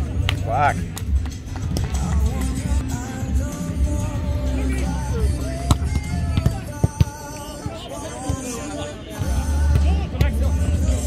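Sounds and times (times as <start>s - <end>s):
background music: 0.0s - 11.0s
volleyball hand slaps: 5.7s - 8.4s.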